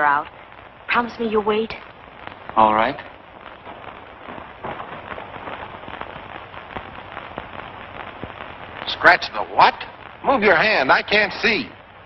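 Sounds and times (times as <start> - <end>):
crackling film soundtrack hiss: 0.0 - 12.0
faint clicks and pops: 0.2 - 10.4.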